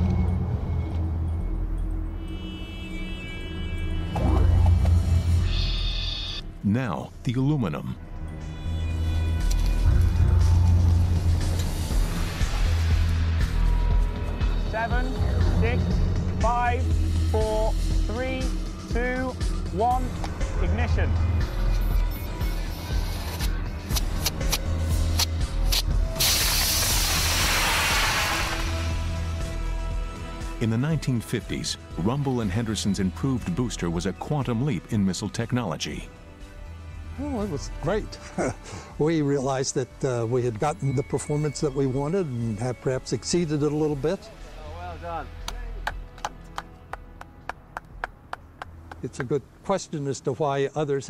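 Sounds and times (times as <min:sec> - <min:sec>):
background music: 0:00.0 - 0:51.0
rocket motor launching hiss: 0:25.6 - 0:29.3
person clapping: 0:45.4 - 0:49.3.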